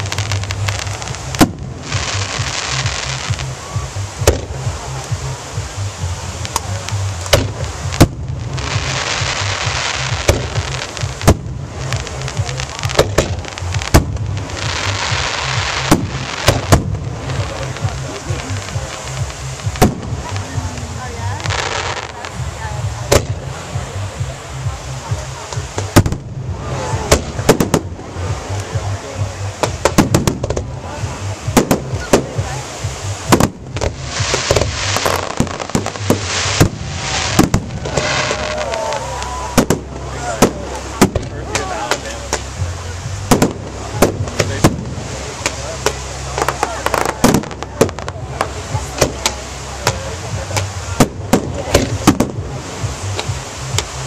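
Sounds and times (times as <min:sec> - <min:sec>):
hissing crackling fireworks: 0:00.0 - 0:54.0
firework shells bursting: 0:14.8 - 0:17.5, 0:33.3 - 0:42.5, 0:43.3 - 0:50.0.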